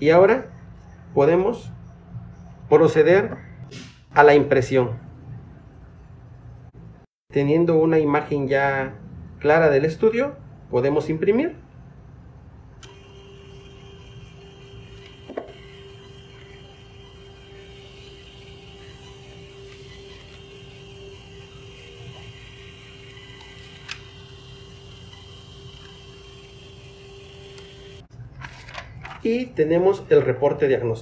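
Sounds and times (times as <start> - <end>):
paper printer humming: 12.8 - 29.0.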